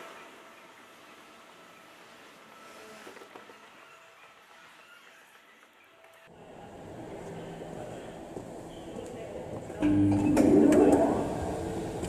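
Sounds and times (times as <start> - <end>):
escalator machinery humming: 6.3 - 12.0.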